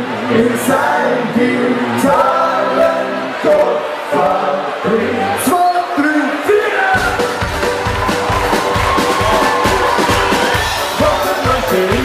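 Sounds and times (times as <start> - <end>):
live band playing: 0.0 - 12.0
steady drum beat: 6.9 - 12.0.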